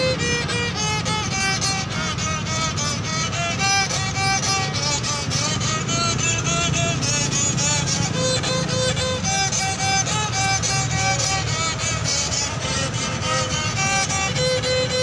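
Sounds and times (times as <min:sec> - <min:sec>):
fiddle playing quick melody: 0:00.0 - 0:15.0
low steady rumble: 0:00.0 - 0:15.0.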